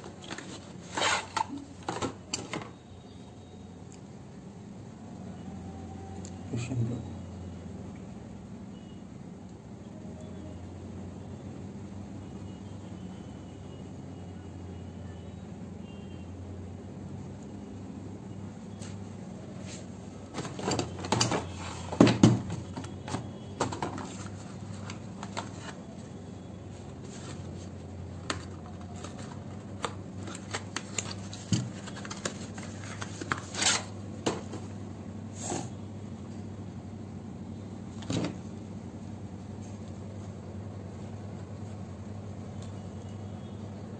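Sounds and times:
packaging handling clicks and rustles: 0.0 - 2.8, 20.2 - 26.1, 26.8 - 34.7.

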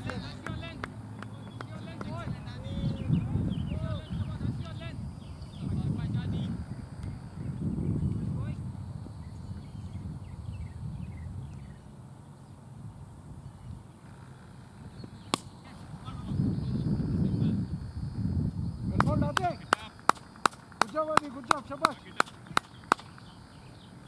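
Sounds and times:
hand claps: 0.0 - 2.2, 19.0 - 23.3
wind rumble: 0.0 - 24.0
cricket bat striking ball: 15.2 - 15.7, 19.0 - 23.3.

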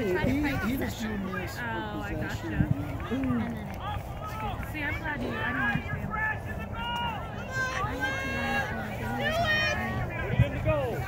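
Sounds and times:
distant voices shouting: 2.8 - 11.0.

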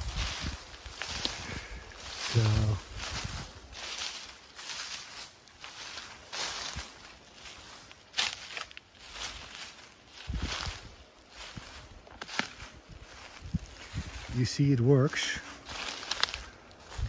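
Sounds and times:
footsteps crunching on dry leaves: 0.0 - 17.0.

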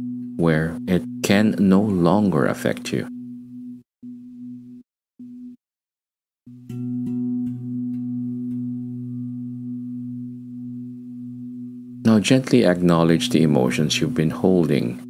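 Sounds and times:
low ambient drone: 0.0 - 4.8, 7.2 - 15.0.

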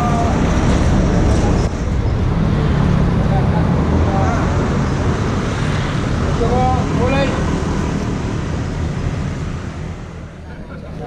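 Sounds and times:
crowd talking: 0.0 - 5.4, 10.2 - 11.0
street traffic rumble: 0.0 - 11.0.

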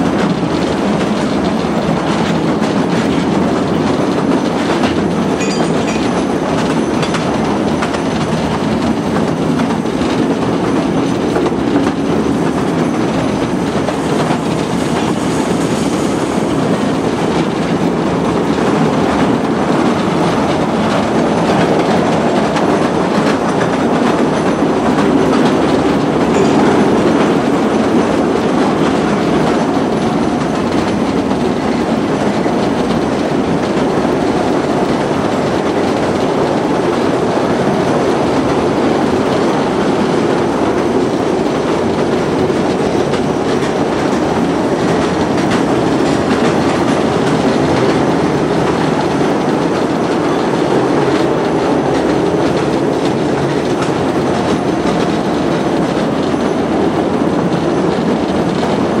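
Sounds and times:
train wheels rumbling on rails: 0.0 - 59.0.

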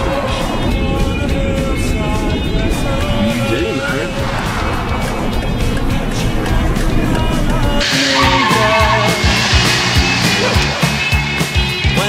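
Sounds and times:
background music: 0.0 - 12.0
car tires squealing: 7.8 - 11.0.

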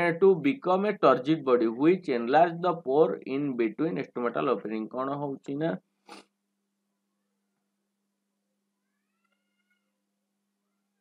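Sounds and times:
distant cat meow: 8.8 - 10.0.

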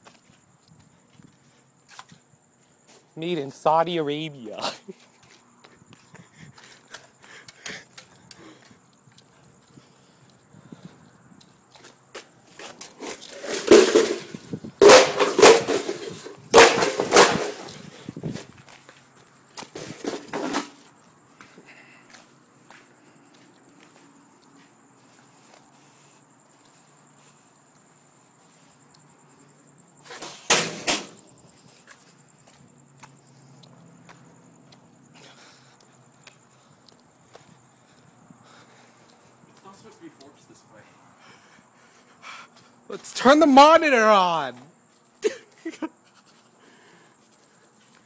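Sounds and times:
computer hardware being smashed: 13.2 - 17.8, 30.3 - 31.2.

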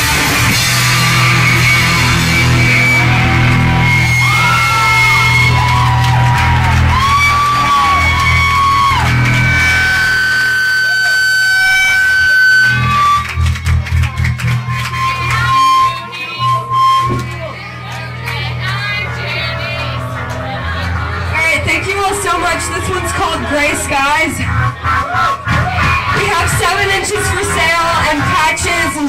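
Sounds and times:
electric guitar bending notes: 0.0 - 29.0
live rock band playing: 0.0 - 29.0.

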